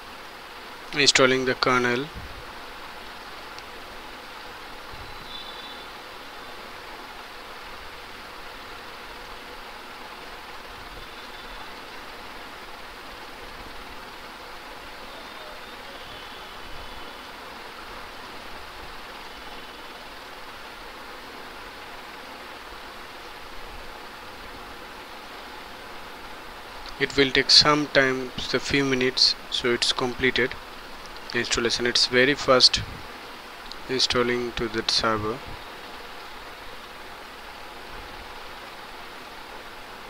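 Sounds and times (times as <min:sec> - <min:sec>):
microphone hiss: 0:00.0 - 0:40.0.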